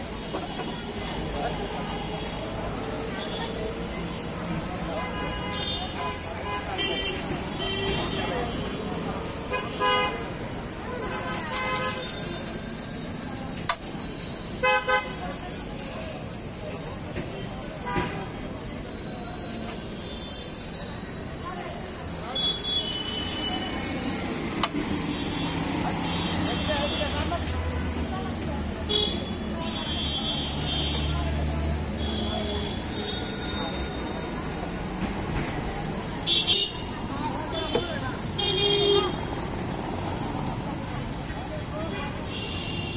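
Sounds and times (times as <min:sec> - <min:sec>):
traffic: 0:00.0 - 0:42.9.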